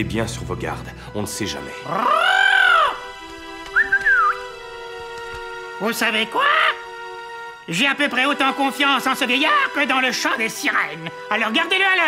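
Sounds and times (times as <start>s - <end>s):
soft background music: 0.0s - 12.0s
wavering whistle: 3.7s - 4.5s.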